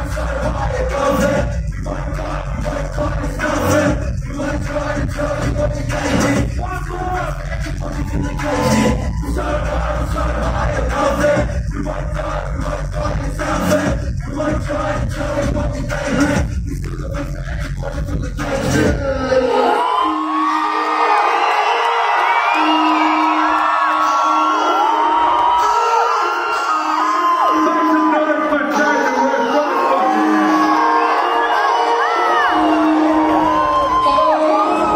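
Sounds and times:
hip hop music through speakers: 0.0s - 34.9s
crowd cheering and whooping: 6.0s - 11.5s, 19.2s - 34.9s.

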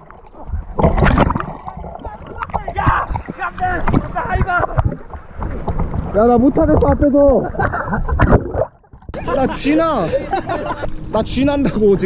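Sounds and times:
wind and water rumble: 0.0s - 12.0s
man laughing: 7.4s - 8.4s, 9.2s - 10.9s.

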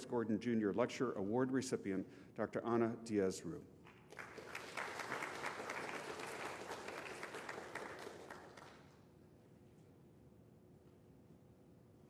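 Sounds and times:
audience applauding: 4.1s - 9.0s.

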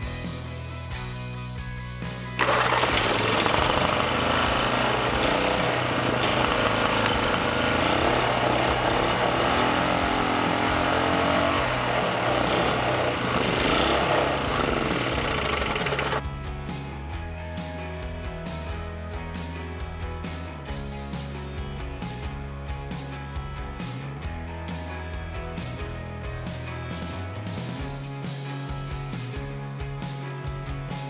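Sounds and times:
background music: 0.0s - 31.0s
single-cylinder small engine running: 2.4s - 16.2s.

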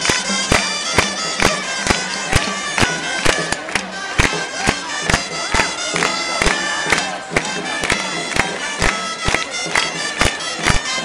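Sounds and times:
drum beating: 0.0s - 11.0s
shrill shawms playing melody: 0.0s - 11.0s.

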